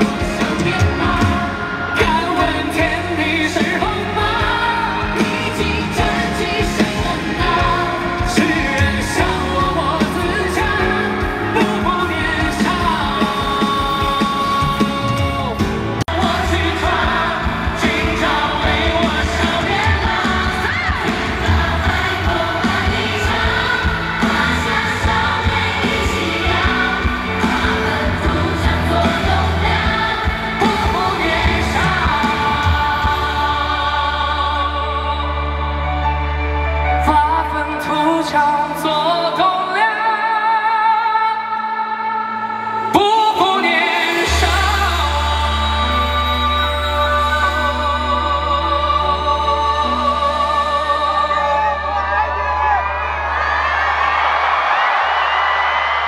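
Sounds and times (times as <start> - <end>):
male lead vocal: 0.0 - 53.3
band playing pop song: 0.0 - 56.0.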